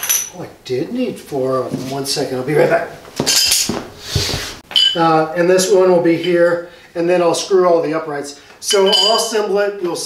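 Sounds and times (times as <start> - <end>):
metal pipes clinking together: 0.0 - 0.4, 3.2 - 3.8, 4.7 - 5.0, 8.7 - 9.4
metallic ring: 0.0 - 0.4, 4.7 - 5.1, 8.7 - 9.4.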